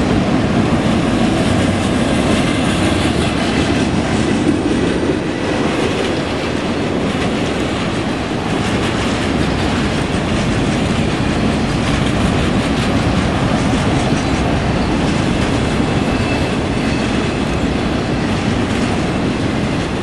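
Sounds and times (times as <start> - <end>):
freight train wheels rumbling: 0.0 - 20.0.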